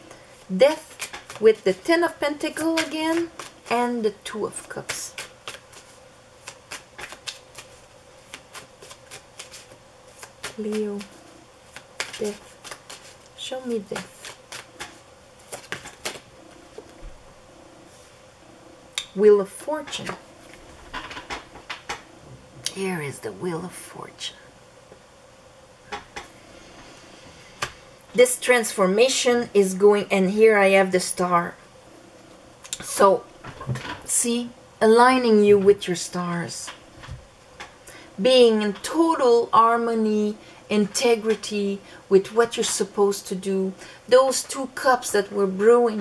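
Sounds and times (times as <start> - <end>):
cards being shuffled: 0.4 - 17.0
finger snap: 18.9 - 19.2.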